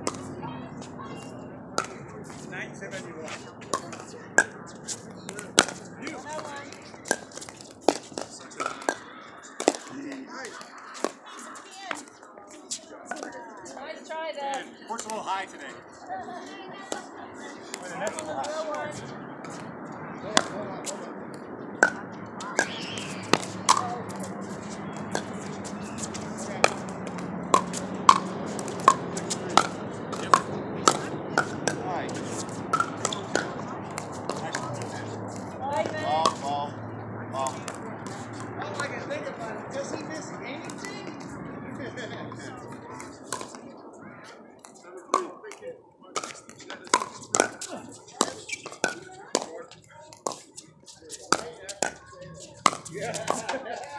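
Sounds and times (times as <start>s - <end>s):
paddles striking plastic ball: 0.0s - 0.4s, 3.7s - 11.2s, 22.6s - 36.5s, 37.4s - 38.8s, 43.0s - 43.6s, 46.2s - 49.5s, 51.3s - 53.5s
indistinct voices: 0.0s - 14.0s, 14.6s - 53.9s.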